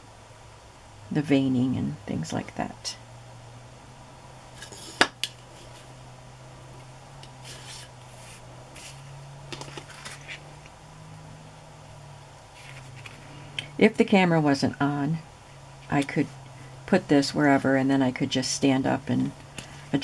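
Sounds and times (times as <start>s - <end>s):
steady low hum: 0.0s - 20.0s
paper and plastic rustling: 7.4s - 10.4s, 12.6s - 13.3s.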